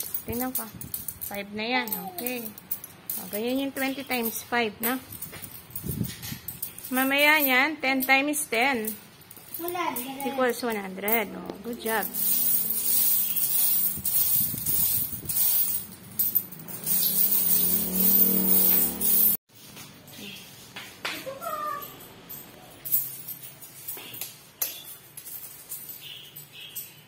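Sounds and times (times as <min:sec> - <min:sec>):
coins clinking on cloth: 0:00.0 - 0:20.4, 0:21.3 - 0:27.0.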